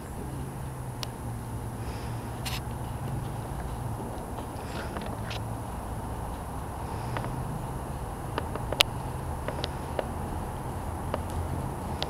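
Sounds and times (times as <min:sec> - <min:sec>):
low rumble: 0:00.0 - 0:12.0
muffled hoofbeats: 0:00.0 - 0:12.0
sharp clicks: 0:08.3 - 0:10.2, 0:11.0 - 0:12.0.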